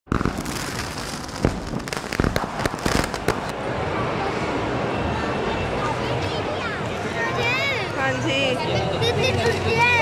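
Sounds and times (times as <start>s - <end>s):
steady background noise: 0.1s - 10.0s.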